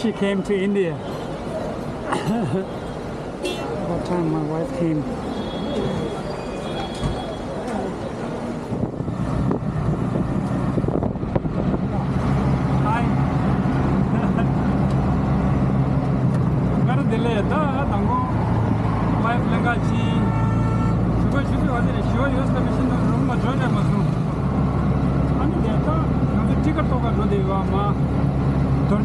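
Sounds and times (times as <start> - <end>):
auto-rickshaw engine running: 7.8 - 29.0.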